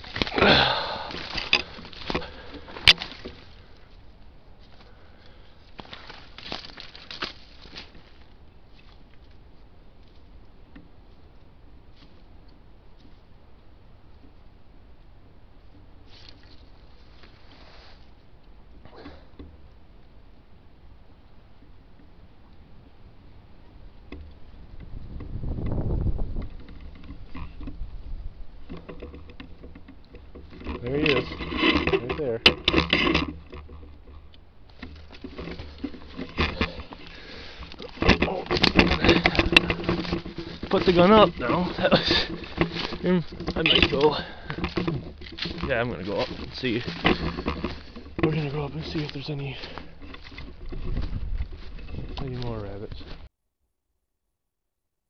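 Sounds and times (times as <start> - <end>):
rustling twigs and snow: 0.0 - 53.3.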